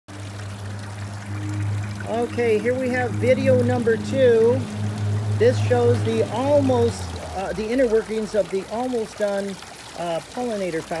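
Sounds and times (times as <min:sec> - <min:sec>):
low hum: 0:00.1 - 0:07.7
fountain water splashing: 0:00.1 - 0:11.0.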